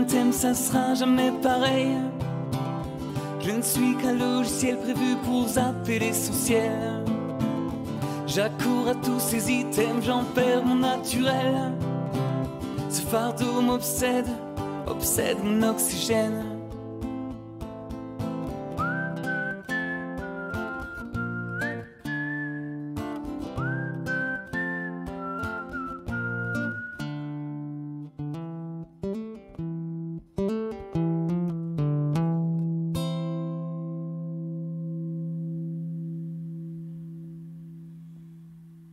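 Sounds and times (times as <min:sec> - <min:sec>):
strummed acoustic guitar: 0:00.0 - 0:38.9
man whistling melody: 0:18.5 - 0:27.6.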